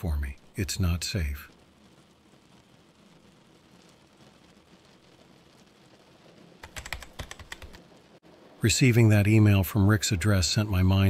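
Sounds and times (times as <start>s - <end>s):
faint rain hiss: 0.0s - 11.0s
computer keyboard typing: 6.6s - 7.8s.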